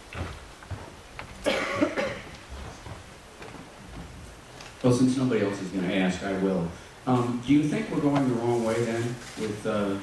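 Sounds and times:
person coughing: 1.4 - 2.3.

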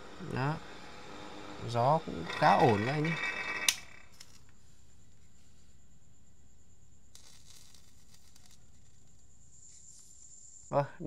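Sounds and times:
electric fan running: 0.0 - 4.5.

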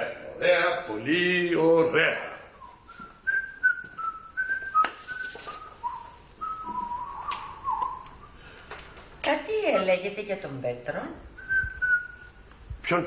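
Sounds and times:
person whistling a tune: 2.6 - 8.3, 11.4 - 12.4.

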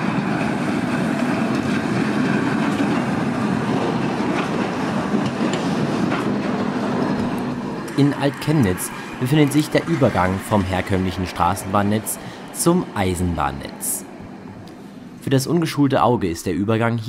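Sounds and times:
tram wheels rolling on rails: 0.0 - 17.0.

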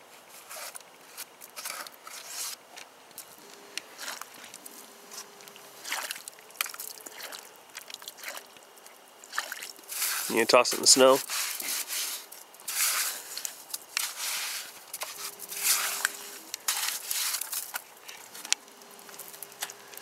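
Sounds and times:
wet mud squelching and scraping: 3.2 - 20.0.

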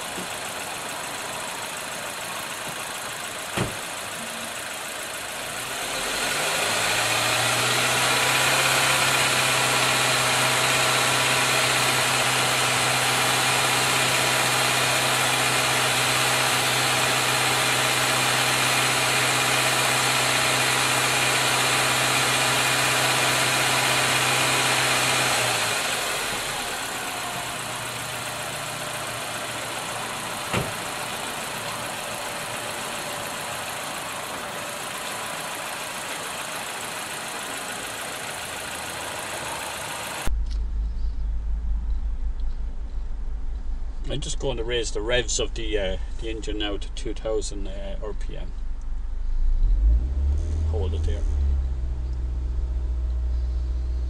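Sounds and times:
car engine idling and revving: 0.0 - 54.0.

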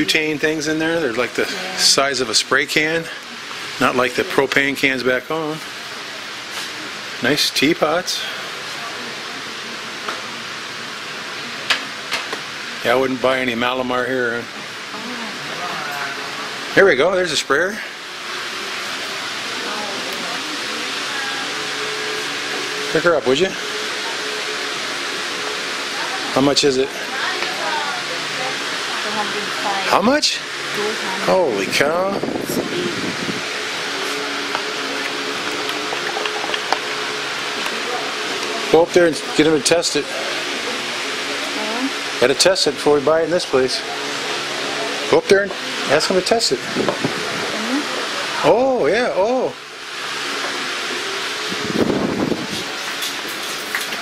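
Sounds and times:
shop background hiss: 0.0 - 54.0.

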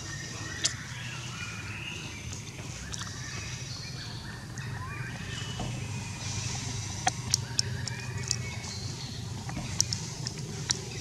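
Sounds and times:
birds chirping: 0.0 - 11.0
steady low hum: 0.0 - 11.0.

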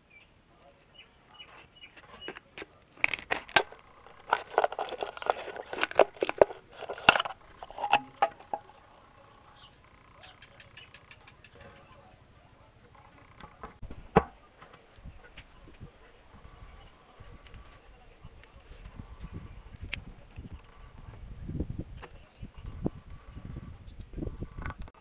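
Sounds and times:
scissors cutting plastic bottle: 3.0 - 8.6.

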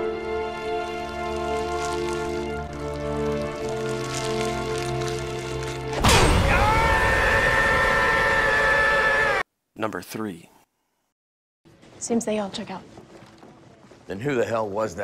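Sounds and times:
long held cry: 6.4 - 9.4.

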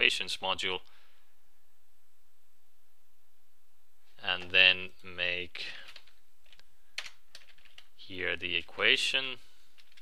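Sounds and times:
computer keyboard keystrokes: 5.9 - 7.9, 9.8 - 10.0.

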